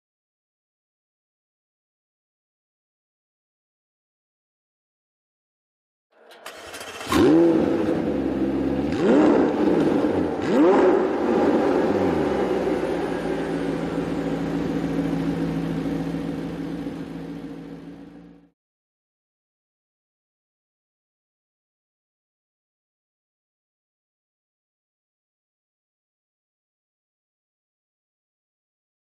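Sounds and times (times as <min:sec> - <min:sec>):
starter whirr: 0:06.2 - 0:08.2
car engine revving and idling: 0:06.2 - 0:18.5.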